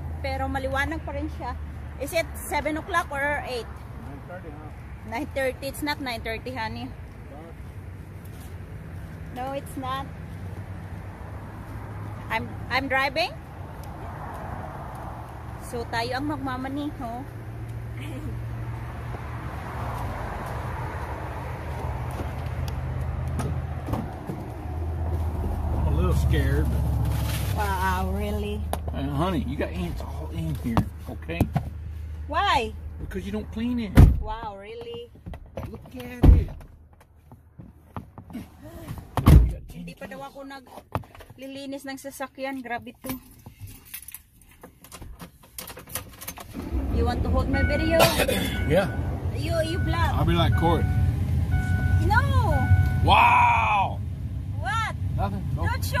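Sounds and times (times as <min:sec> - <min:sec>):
low hum of vehicles: 0:00.0 - 0:56.0.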